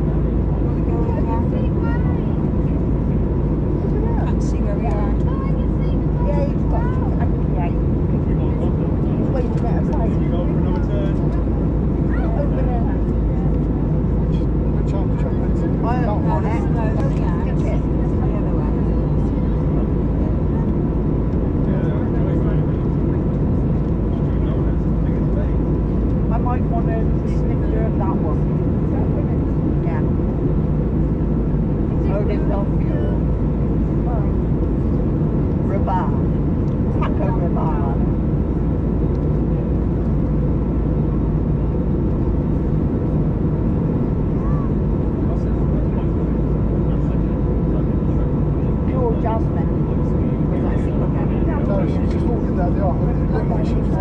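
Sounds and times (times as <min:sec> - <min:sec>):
aircraft cabin engine drone: 0:00.0 - 0:54.0.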